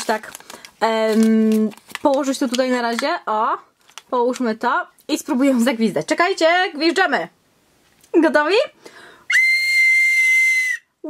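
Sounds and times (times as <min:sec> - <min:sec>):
plastic toy whistle: 0:09.3 - 0:10.9.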